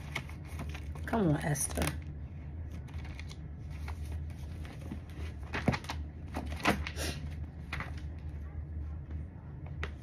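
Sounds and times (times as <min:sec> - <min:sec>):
thin pages rustling: 0:00.0 - 0:01.0, 0:01.8 - 0:08.3
steady low hum: 0:00.0 - 0:10.0.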